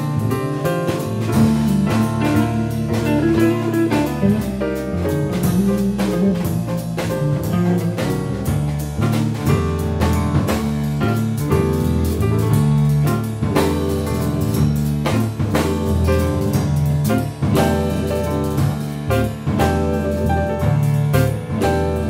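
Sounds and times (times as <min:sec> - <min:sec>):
piano chords: 0:00.0 - 0:22.0
walking bass line: 0:00.0 - 0:22.0.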